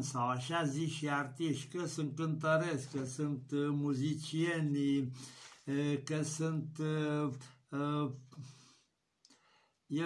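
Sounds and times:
man speaking: 0.0s - 8.6s.

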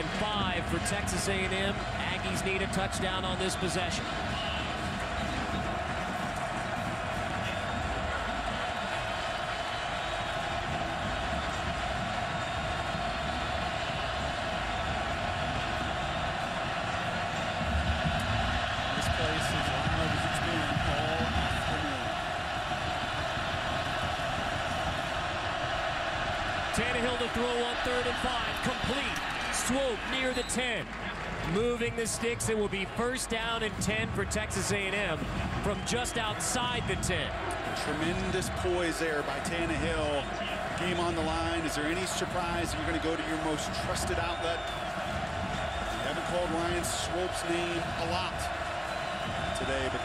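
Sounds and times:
stadium crowd roaring: 0.0s - 50.0s.

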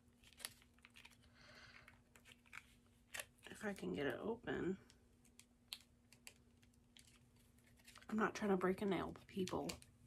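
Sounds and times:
package crinkling and clicking: 0.2s - 3.5s, 5.2s - 8.1s.

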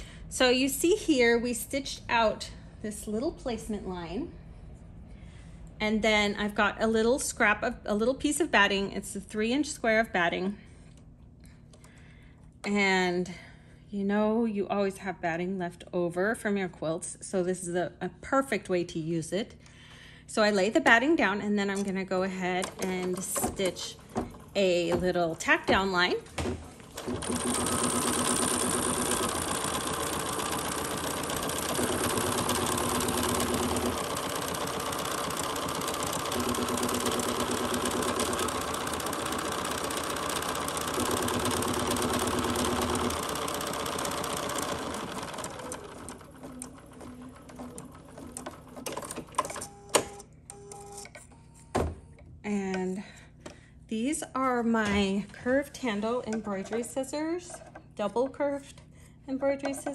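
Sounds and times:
embroidery machine stitching: 22.4s - 26.0s, 26.8s - 50.2s.

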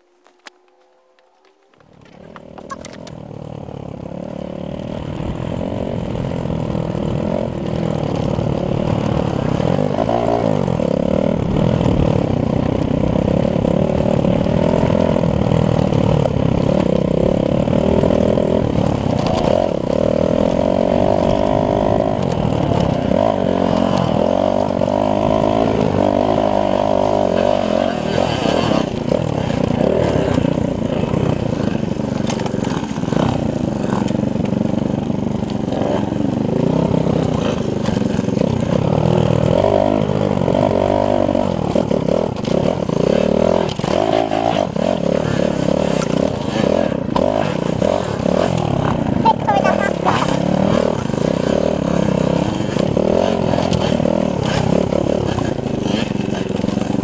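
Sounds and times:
small motorcycle engine revving: 0.0s - 57.0s.

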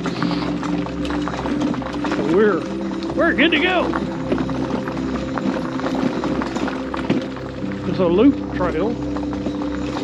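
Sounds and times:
wheels rattling on gravel: 0.0s - 10.0s.

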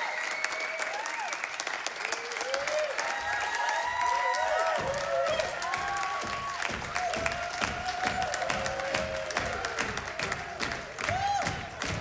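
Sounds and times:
cheers and whoops: 0.0s - 10.4s, 11.0s - 12.0s
audience applauding: 0.0s - 12.0s.

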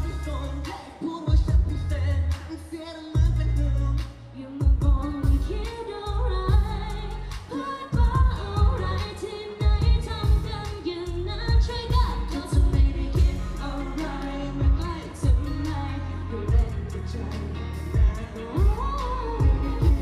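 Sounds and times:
pop song over sound system: 0.0s - 20.0s.

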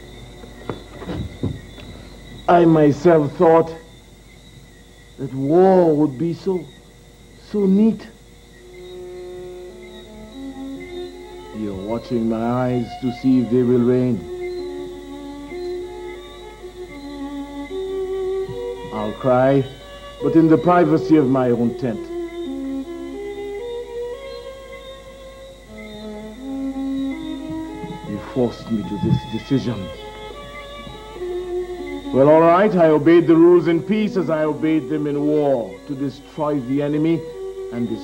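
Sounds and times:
soft music of sustained notes: 0.0s - 38.0s.

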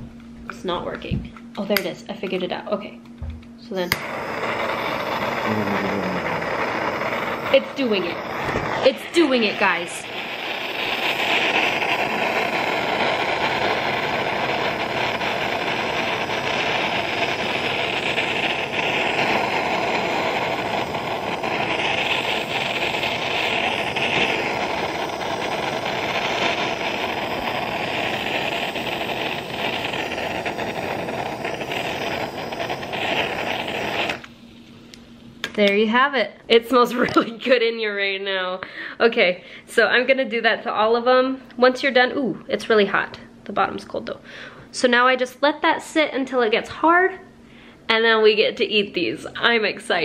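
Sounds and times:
blowtorch hissing: 3.6s - 35.2s.

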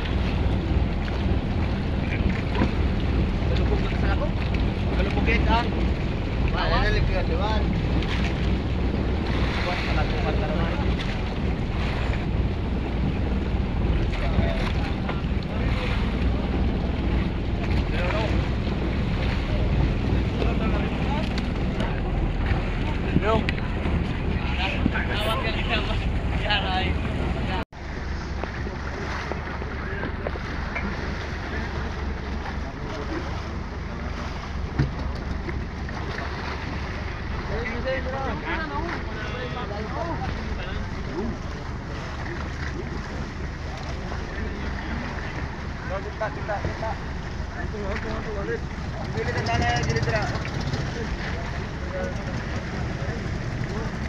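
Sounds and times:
boat engine droning: 0.0s - 54.0s
water washing against hull: 0.0s - 54.0s
wind buffeting microphone: 0.0s - 54.0s.

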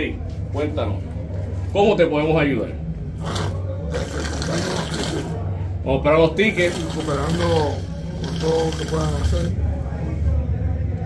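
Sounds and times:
man speaking in hoarse strained voice: 6.1s - 9.6s.

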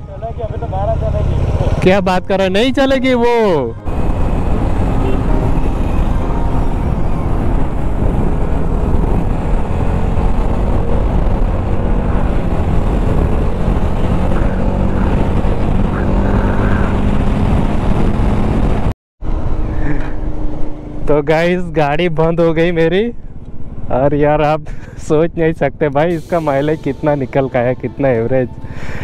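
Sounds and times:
motorcycle engine droning: 3.7s - 21.2s
wind rushing over microphone: 3.8s - 21.1s.

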